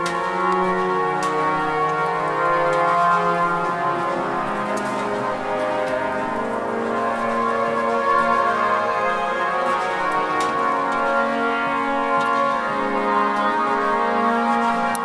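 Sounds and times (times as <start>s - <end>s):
vocal and wind ensemble chords: 0.0s - 15.0s.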